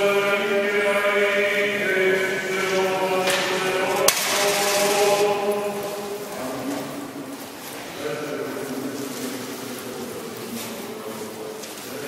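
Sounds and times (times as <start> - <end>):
church chanting: 0.0 - 12.0.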